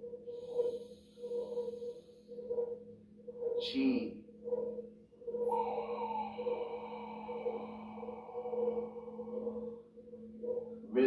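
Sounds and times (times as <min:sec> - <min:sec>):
low drone of held notes: 0:00.0 - 0:11.0
ringing tone: 0:00.0 - 0:11.0.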